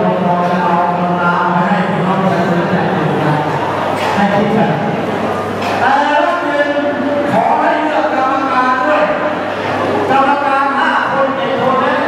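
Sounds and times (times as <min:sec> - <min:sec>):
man speaking through microphone: 0:00.0 - 0:12.0.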